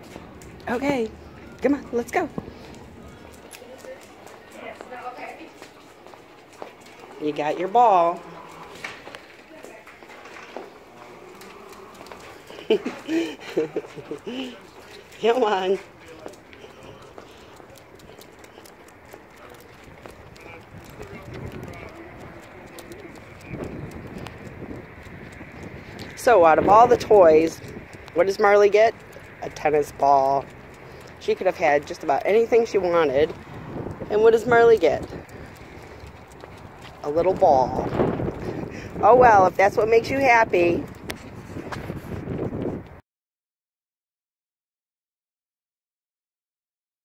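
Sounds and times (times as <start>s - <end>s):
dog's nails clicking on asphalt: 0.0s - 0.8s, 1.4s - 42.5s
faint voices: 0.0s - 39.5s
footsteps on asphalt: 0.0s - 43.0s
dog claws clicking on tiles: 11.3s - 13.0s, 16.1s - 26.2s, 35.0s - 37.3s.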